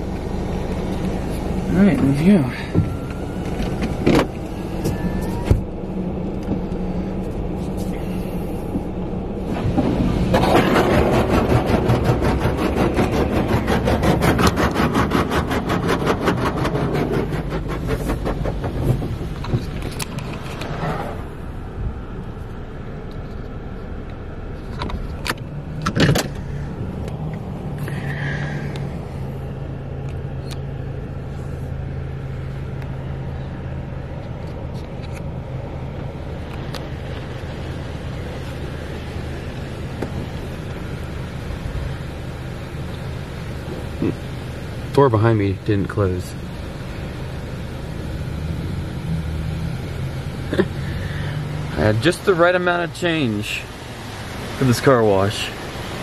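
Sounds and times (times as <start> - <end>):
car engine idling: 0.0 - 56.0
rushing water spray: 50.6 - 56.0.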